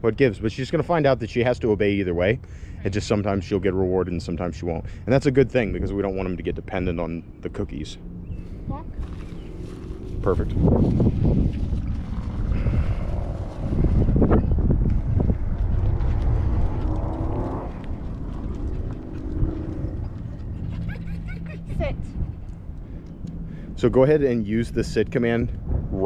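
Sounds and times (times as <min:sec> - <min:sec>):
low rumbling noise: 0:03.7 - 0:26.0
engine drone: 0:04.8 - 0:26.0.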